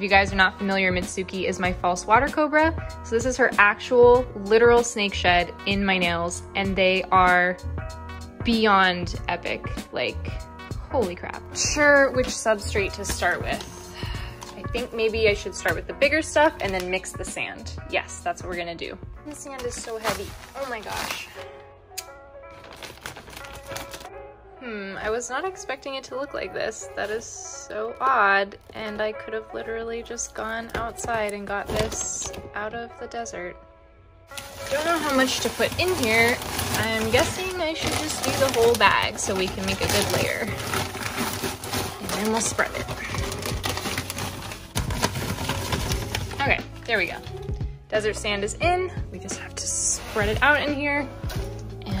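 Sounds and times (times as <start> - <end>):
background music: 0.0 - 52.0
plastic crinkling: 19.3 - 21.6, 22.5 - 24.1, 30.1 - 32.5, 34.3 - 47.5
scissors cutting plastic bag: 19.3 - 24.1, 30.4 - 32.5, 34.3 - 46.8.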